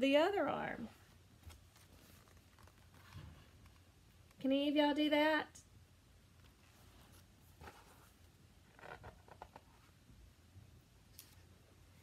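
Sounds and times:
faint book handling noises: 0.8s - 4.4s, 6.3s - 10.1s, 11.0s - 12.0s.

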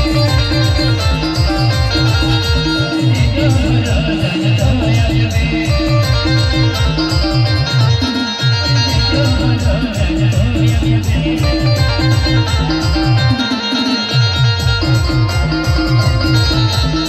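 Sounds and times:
dance music from a band: 0.0s - 17.0s
fast steady drum beat: 0.0s - 17.0s
melodic lead: 0.0s - 17.0s.

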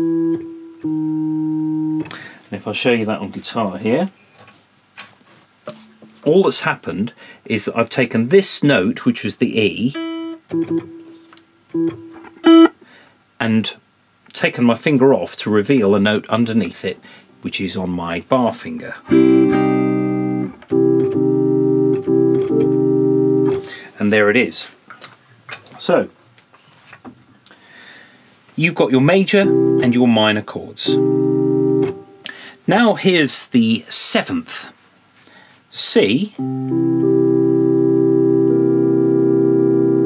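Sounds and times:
electronic keyboard organ chord: 0.0s - 2.1s, 19.1s - 23.7s, 29.4s - 32.2s, 36.4s - 40.0s.

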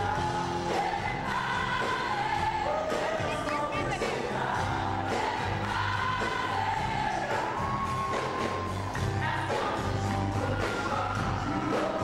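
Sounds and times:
live band playing: 0.0s - 12.0s
voices singing long held notes: 0.0s - 12.0s.

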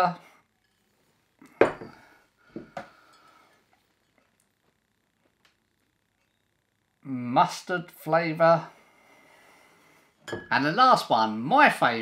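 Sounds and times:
glass bottles clinking: 1.6s - 2.0s, 10.2s - 10.6s.

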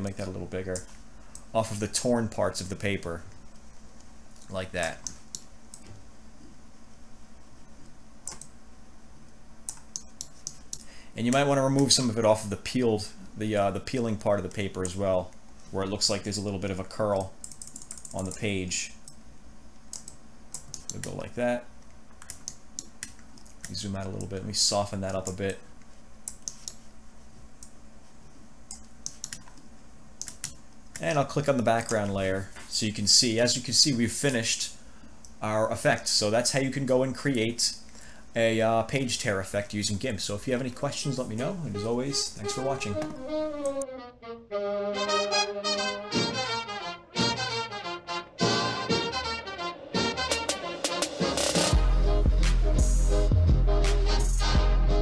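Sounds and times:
low electrical hum: 0.0s - 50.3s
mouse and keyboard clicks: 26.3s - 26.8s.

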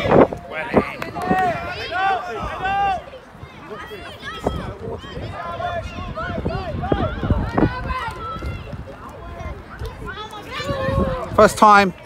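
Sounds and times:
children shouting: 0.0s - 11.4s.

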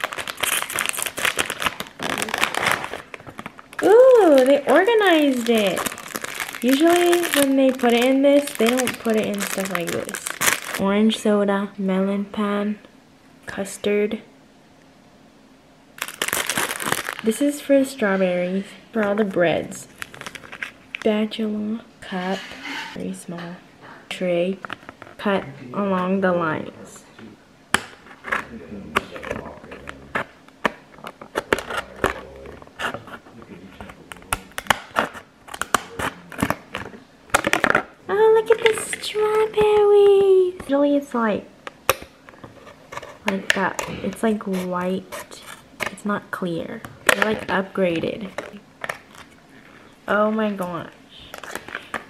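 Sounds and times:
plastic packaging crinkling: 0.0s - 10.8s, 16.0s - 17.5s, 19.0s - 21.2s, 28.0s - 40.7s, 47.0s - 49.8s, 51.2s - 52.0s
person speaking: 3.8s - 11.4s, 28.4s - 30.3s, 31.6s - 34.8s, 38.1s - 41.4s.

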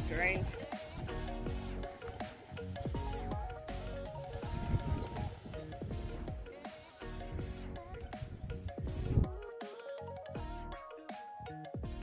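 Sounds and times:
background music with pitch sweeps: 0.0s - 12.0s.

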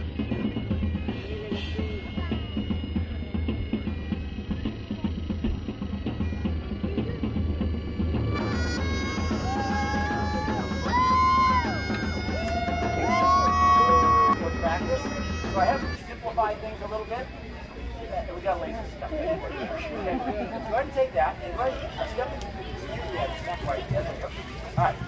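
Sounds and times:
drums playing steady beat: 0.0s - 16.0s
bagpipes melody: 0.0s - 19.1s.

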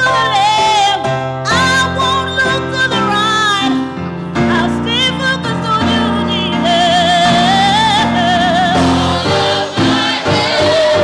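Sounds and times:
instrumental accompaniment: 0.2s - 11.0s
gospel choir singing: 6.4s - 11.0s.

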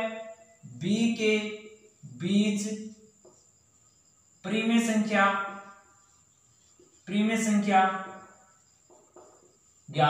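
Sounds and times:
man speaking: 0.0s - 2.8s, 4.4s - 5.6s, 7.1s - 8.2s
faint high-pitched whine: 0.0s - 10.0s.

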